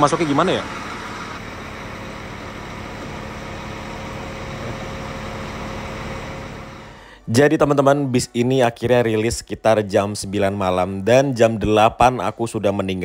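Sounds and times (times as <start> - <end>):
bus engine idling: 0.0 - 7.3.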